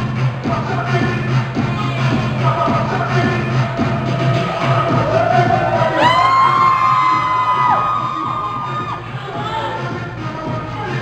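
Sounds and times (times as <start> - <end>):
dancehall music over speakers: 0.0 - 11.0
audience cheering and whooping: 4.0 - 9.8.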